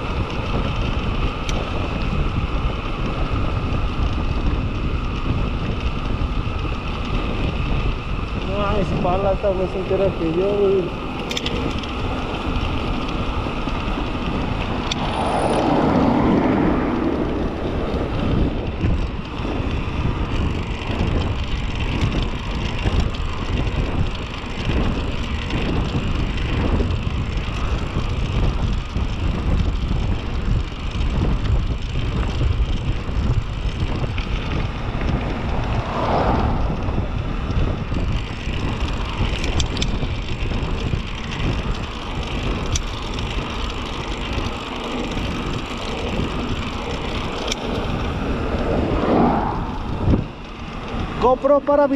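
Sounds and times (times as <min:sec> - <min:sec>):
tyres rumbling on asphalt: 0:00.0 - 0:51.9
wind buffeting microphone: 0:00.0 - 0:51.9.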